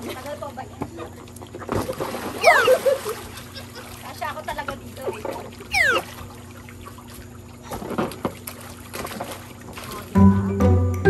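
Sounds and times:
pool water sloshing and splashing: 0:00.0 - 0:10.4
high falling squeal: 0:02.4 - 0:02.8, 0:05.7 - 0:06.1.

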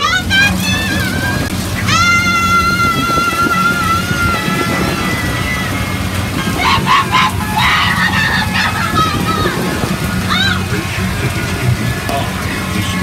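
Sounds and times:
steady low machine hum: 0:00.0 - 0:13.0.

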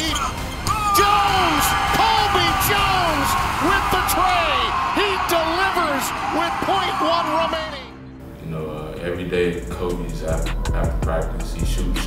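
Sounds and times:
people shouting and whooping: 0:00.2 - 0:07.9.

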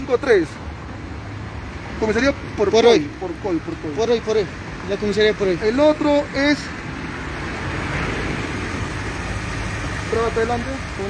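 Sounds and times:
motor vehicles rumbling: 0:00.0 - 0:11.0.

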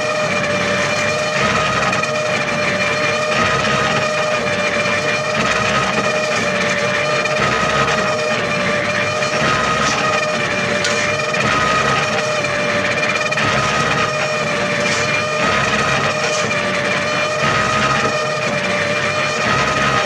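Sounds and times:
steady machine whine: 0:00.0 - 0:20.0.

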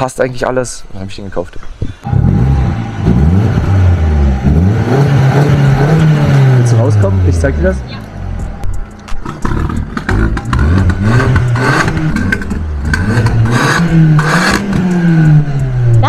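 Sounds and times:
car engine revving: 0:02.0 - 0:16.0.

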